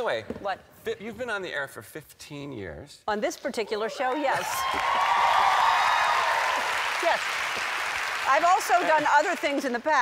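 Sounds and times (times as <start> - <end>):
audience applause: 4.3 - 9.6.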